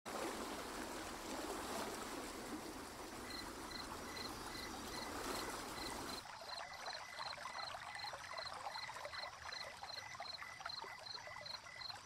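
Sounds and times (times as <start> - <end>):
water trickling: 0.1 - 12.0.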